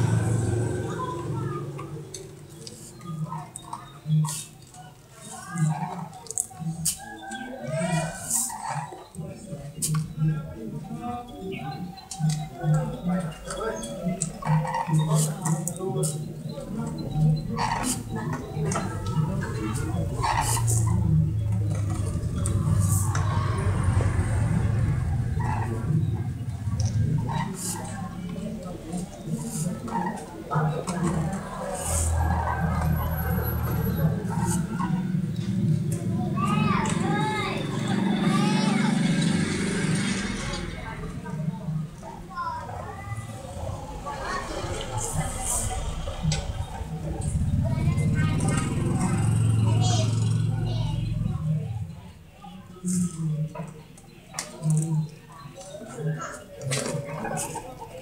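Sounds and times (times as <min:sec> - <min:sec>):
low engine-like rumble: 0:00.0 - 0:02.9, 0:17.1 - 0:38.8, 0:39.6 - 0:52.3
voices talking: 0:00.0 - 0:58.0.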